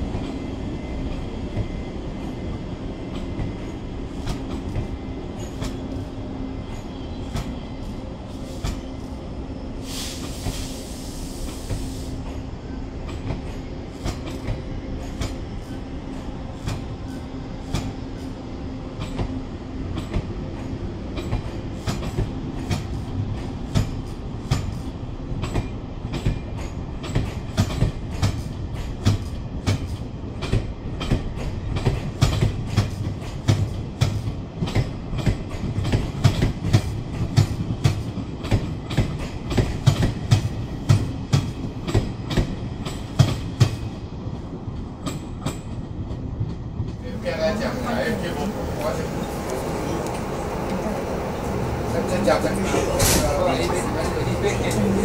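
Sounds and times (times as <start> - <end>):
train rumble: 0.0 - 55.0.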